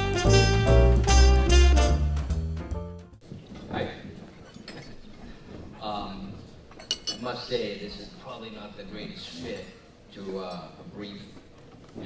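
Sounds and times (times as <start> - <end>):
tableware clinking: 4.4 - 5.1, 6.7 - 7.3.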